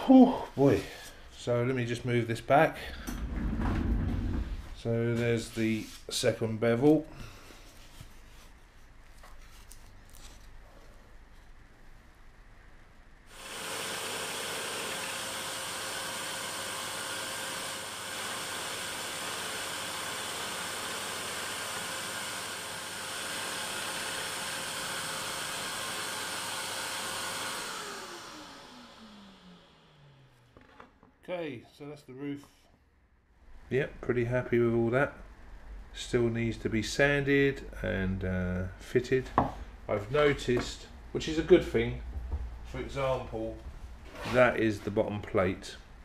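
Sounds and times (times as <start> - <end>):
dust extractor hiss: 13.3 - 30.1
saw motor winding down: 13.3 - 30.4
knocks of wood being handled: 39.3 - 39.6.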